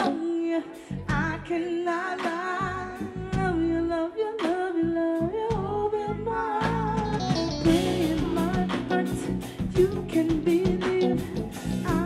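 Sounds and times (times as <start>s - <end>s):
funk band playing: 0.0s - 1.6s, 6.6s - 12.0s.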